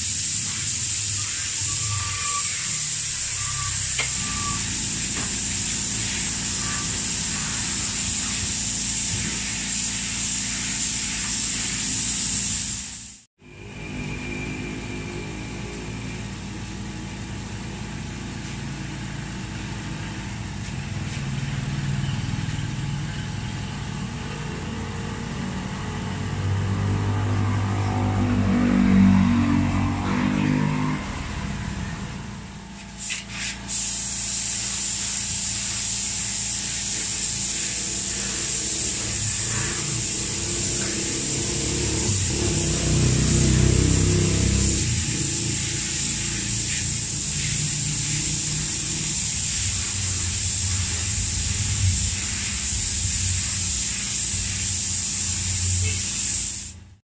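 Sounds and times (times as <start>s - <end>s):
spray gun hissing: 0.0s - 13.3s, 32.9s - 57.0s
low motor drone: 24.7s - 32.6s.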